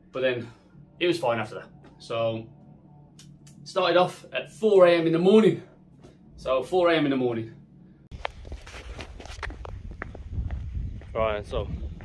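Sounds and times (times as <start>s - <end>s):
footsteps of person walking: 8.1s - 12.0s
low microphone rumble: 8.1s - 12.0s.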